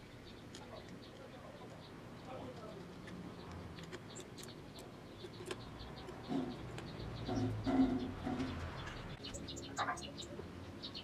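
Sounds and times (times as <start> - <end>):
bird cooing: 6.2 - 8.7.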